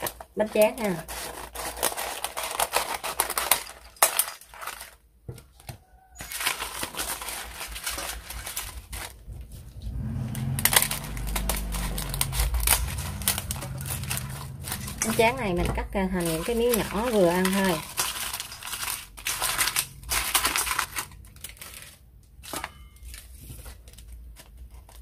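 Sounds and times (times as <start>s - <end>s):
rice paper crinkling: 0.0s - 25.0s
low steady hum: 7.9s - 25.0s.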